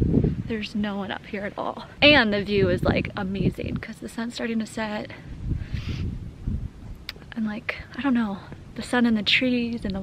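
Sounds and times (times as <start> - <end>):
wind buffeting microphone: 0.0 - 10.0
short hiss: 5.6 - 6.2.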